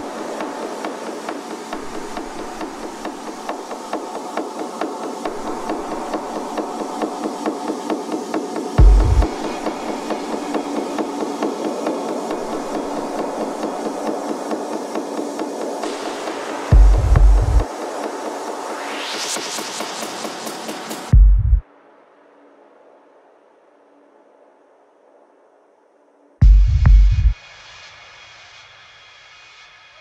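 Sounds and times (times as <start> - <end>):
mid-range synth pad: 0.0 - 24.5
knocking percussion loop: 5.6 - 18.2, 20.6 - 21.6, 26.4 - 27.4
kick drum: 8.8 - 9.5, 16.7 - 17.7, 21.1 - 21.6, 26.4 - 27.4.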